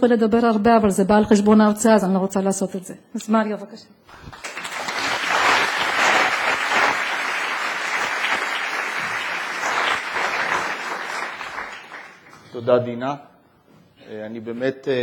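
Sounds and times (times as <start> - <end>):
audience applauding: 4.1 - 12.5.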